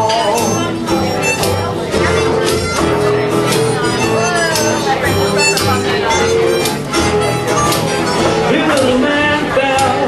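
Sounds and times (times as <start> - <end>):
acoustic band playing: 0.0 - 10.0.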